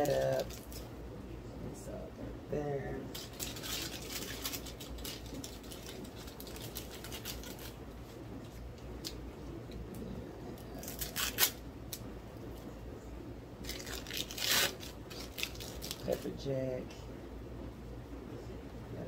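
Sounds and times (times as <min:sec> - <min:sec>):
packaging rustle: 0:00.0 - 0:00.9, 0:03.1 - 0:09.2, 0:10.6 - 0:11.6, 0:13.6 - 0:16.2
plastic packaging crinkling: 0:00.0 - 0:00.9, 0:03.1 - 0:09.2, 0:10.6 - 0:11.6, 0:13.6 - 0:16.3.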